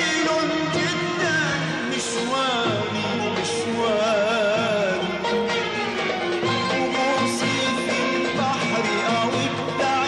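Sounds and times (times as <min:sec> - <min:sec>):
live band music: 0:00.0 - 0:10.0
steady drum beat: 0:00.0 - 0:10.0.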